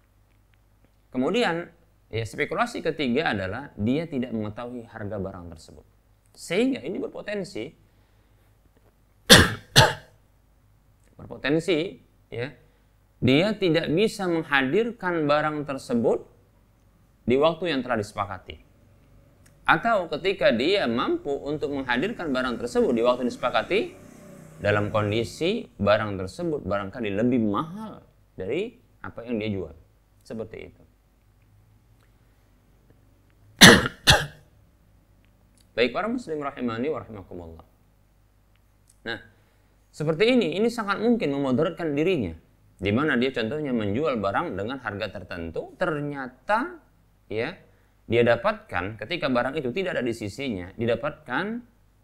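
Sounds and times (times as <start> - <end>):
man coughing into hand: 9.3 - 10.2, 33.6 - 34.4.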